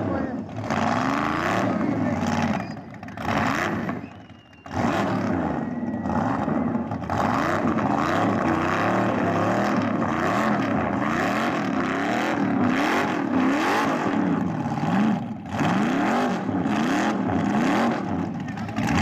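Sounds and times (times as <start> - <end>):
car engine revving hard: 0.0 - 19.0
tyres spinning on asphalt: 0.0 - 19.0.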